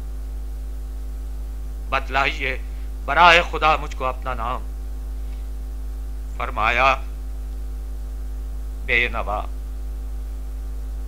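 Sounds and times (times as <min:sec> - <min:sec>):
low mains hum: 0:00.0 - 0:11.0.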